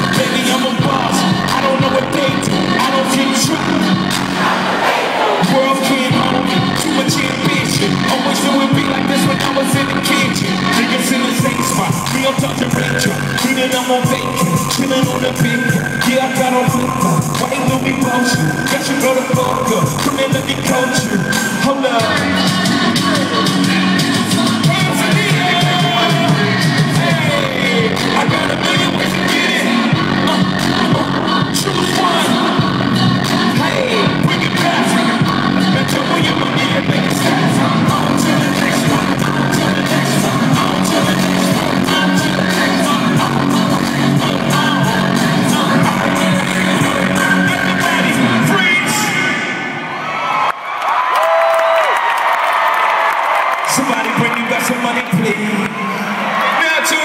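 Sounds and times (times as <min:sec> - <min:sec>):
crowd noise: 0:00.0 - 0:57.0
live concert music with vocals: 0:00.0 - 0:57.0.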